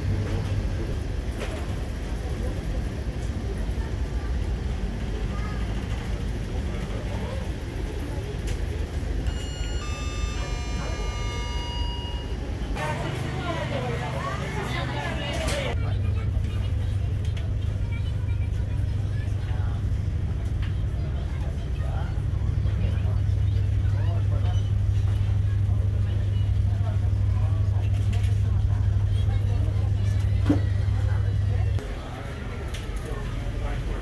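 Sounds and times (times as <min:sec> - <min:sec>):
faint passenger voices: 0:00.0 - 0:34.0
ship engines droning: 0:00.0 - 0:34.0.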